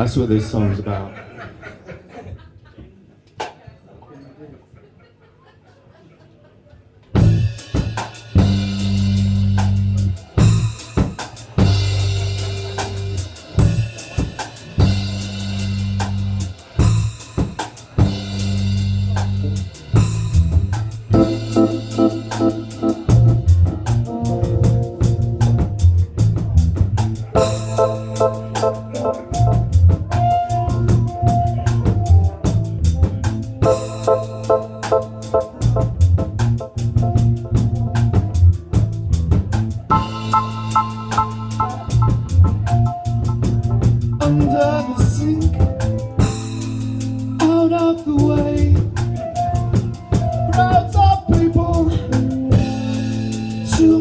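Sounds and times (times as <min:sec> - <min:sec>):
drum kit hits: 0:07.2 - 0:54.0
electric bass notes: 0:07.2 - 0:54.0
electric guitar: 0:07.2 - 0:54.0.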